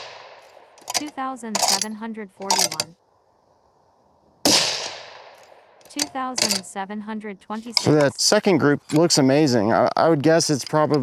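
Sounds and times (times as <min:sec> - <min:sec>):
rifle shot with echo: 0:00.0 - 0:00.8, 0:04.4 - 0:05.8.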